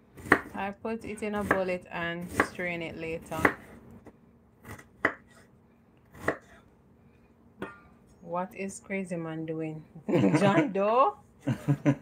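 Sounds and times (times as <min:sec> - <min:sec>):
knife chopping on wooden board: 0:00.2 - 0:00.5, 0:03.3 - 0:03.6, 0:04.6 - 0:05.4, 0:06.1 - 0:06.6.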